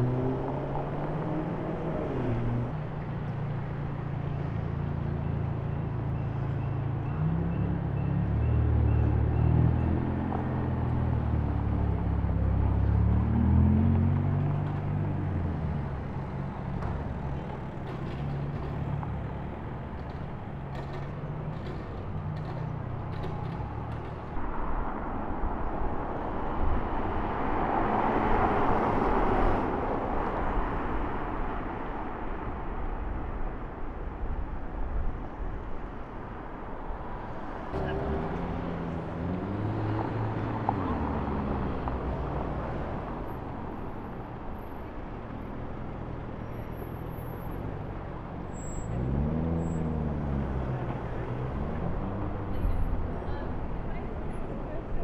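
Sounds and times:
city traffic rush: 0:00.0 - 0:55.0.

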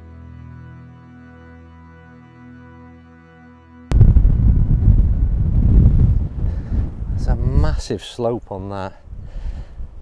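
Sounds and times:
wind buffeting microphone: 0:03.9 - 0:10.0.

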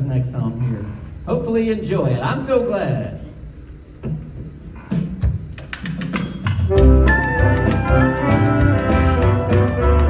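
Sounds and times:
jazz band playing: 0:06.5 - 0:10.0.

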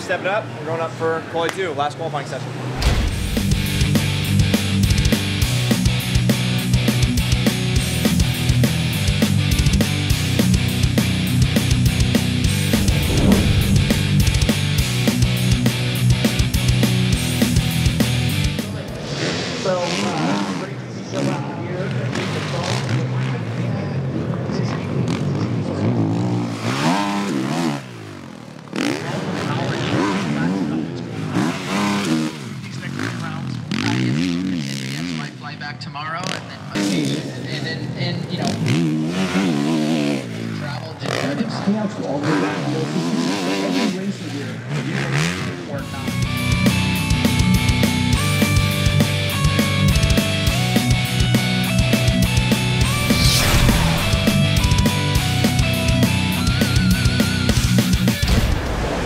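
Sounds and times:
rock music: 0:02.8 - 0:18.9, 0:46.0 - 0:59.0
motocross bikes revving and passing: 0:10.2 - 0:15.2, 0:19.8 - 0:35.4, 0:36.2 - 0:58.0.

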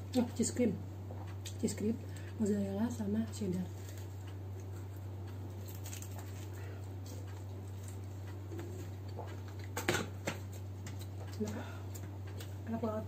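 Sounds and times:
low electrical hum: 0:00.0 - 0:13.0
chewing food: 0:03.3 - 0:09.8, 0:10.4 - 0:12.6.

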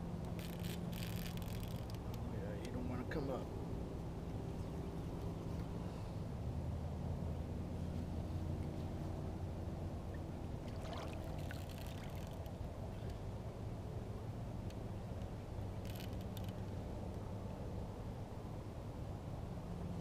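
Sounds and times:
water lapping against hull: 0:10.1 - 0:13.1.

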